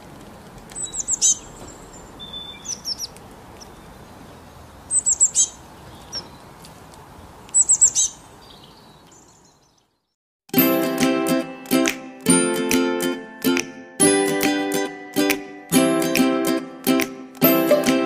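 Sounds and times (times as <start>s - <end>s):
faint outdoor hiss: 0.0s - 10.1s
songbird chirping: 0.7s - 10.2s.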